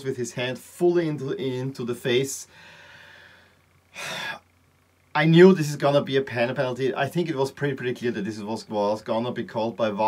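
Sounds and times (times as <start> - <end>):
man breathing: 2.5 - 4.4.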